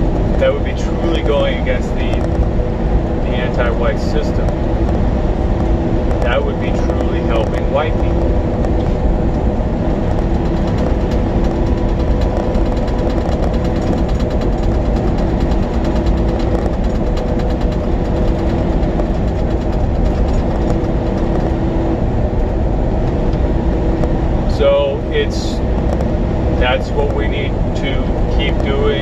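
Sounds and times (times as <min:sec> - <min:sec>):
truck engine and road noise: 0:00.0 - 0:29.0.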